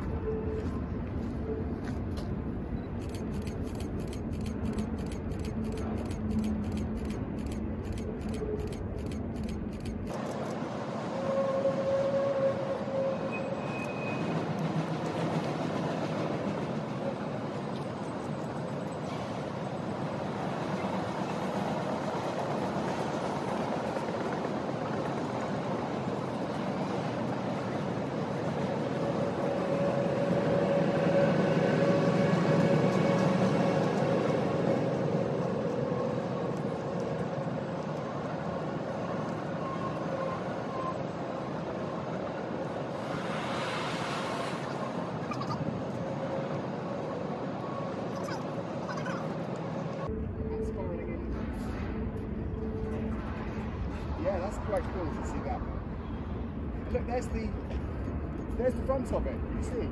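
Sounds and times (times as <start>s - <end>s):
distant freight train rumble: 0.0s - 59.9s.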